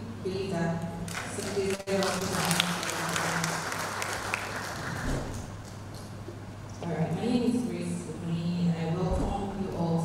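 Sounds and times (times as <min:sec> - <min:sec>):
audience applauding: 0:01.1 - 0:05.8.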